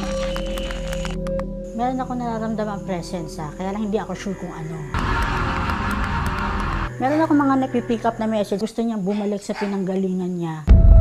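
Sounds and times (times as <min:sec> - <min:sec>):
noisy sound-effect sting: 0:05.0 - 0:06.9
deep rumble: 0:05.0 - 0:07.2.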